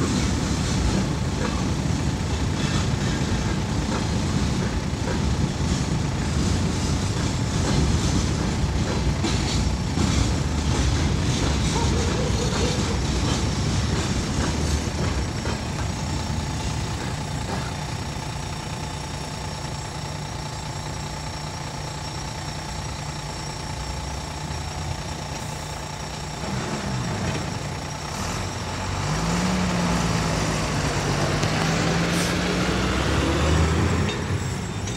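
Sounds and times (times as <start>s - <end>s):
diesel engines idling: 0.0s - 34.9s
heavy truck pulling away: 0.0s - 34.9s.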